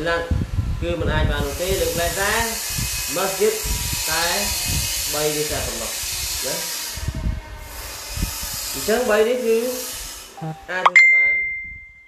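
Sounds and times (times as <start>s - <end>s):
man speaking: 10.4s - 11.5s.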